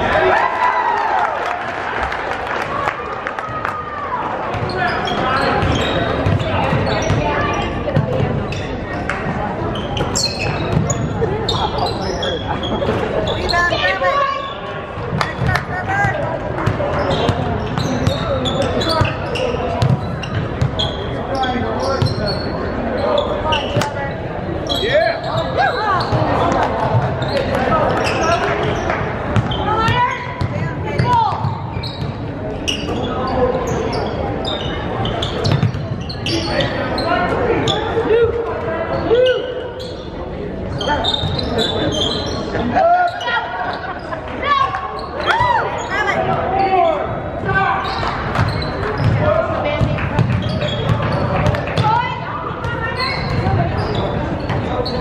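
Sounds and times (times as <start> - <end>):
indistinct shouts and talk: 0.0 - 55.0
sneakers squeaking: 3.4 - 55.0.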